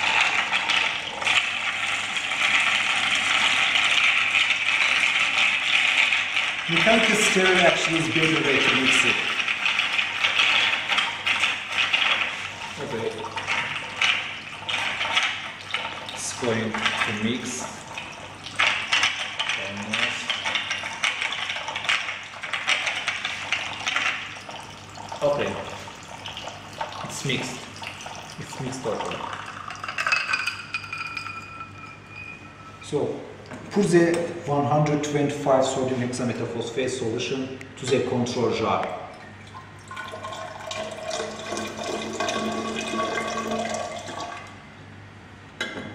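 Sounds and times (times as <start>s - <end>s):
glass beaker clinking: 28.0s - 33.2s
clear ringing tone: 30.8s - 32.9s.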